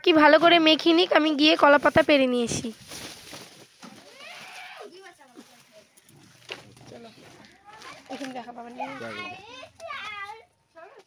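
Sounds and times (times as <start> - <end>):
young child talking: 7.0 - 10.5.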